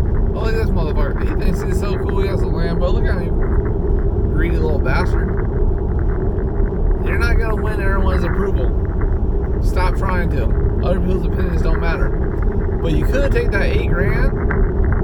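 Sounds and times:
car cabin road and engine noise: 0.0 - 15.0
man talking: 0.4 - 3.4, 4.3 - 5.3, 7.0 - 8.8, 9.6 - 12.2, 12.8 - 14.4.

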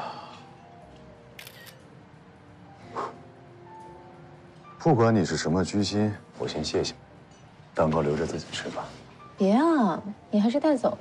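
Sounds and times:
camera shutter click: 1.4 - 1.8.

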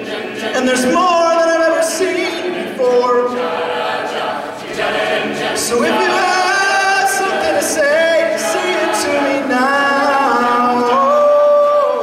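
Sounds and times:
a cappella group singing chords: 0.0 - 12.0.

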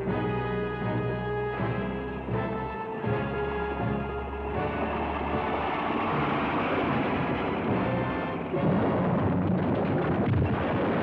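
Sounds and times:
film score held chords: 0.0 - 11.0
dense noisy rumble: 2.9 - 11.0.

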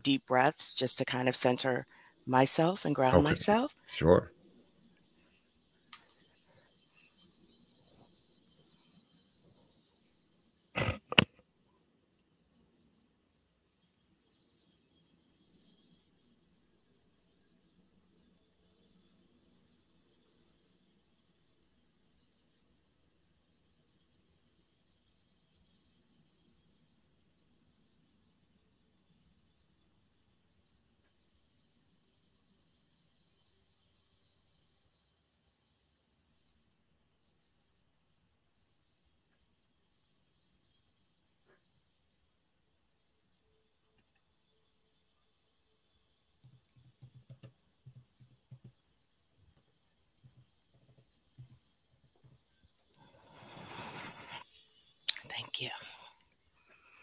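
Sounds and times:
faint high-pitched hiss: 0.0 - 57.0.

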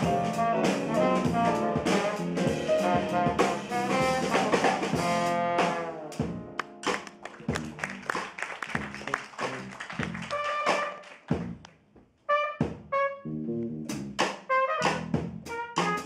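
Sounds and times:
drum kit: 0.0 - 11.6, 12.3 - 13.0, 13.8 - 16.0
piano: 0.0 - 11.6
bass: 0.0 - 16.0
horns holding notes: 0.4 - 6.1, 8.9 - 11.2.

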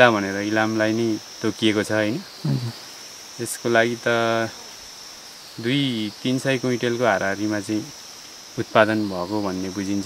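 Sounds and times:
man talking: 0.0 - 2.8, 3.4 - 4.5, 5.6 - 7.9, 8.6 - 10.0
high-pitched insect drone: 0.0 - 10.0.

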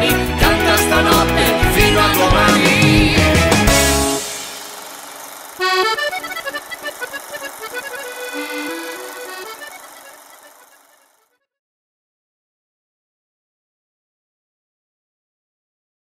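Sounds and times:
solo accordion melody: 0.0 - 11.4.

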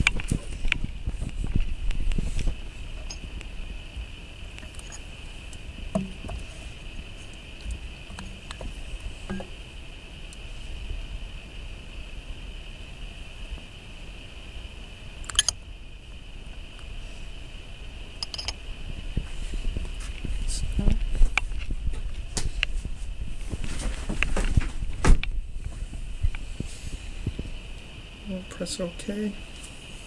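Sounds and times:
faint high-pitched hiss: 0.0 - 30.0.

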